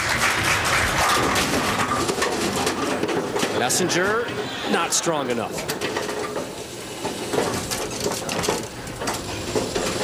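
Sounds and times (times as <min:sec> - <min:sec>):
bowling pins clattering: 0:00.2 - 0:03.8.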